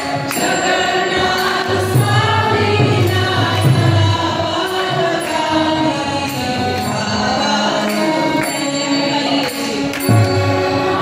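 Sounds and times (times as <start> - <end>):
many voices singing together: 0.0 - 11.0
sustained harmonium: 0.0 - 11.0.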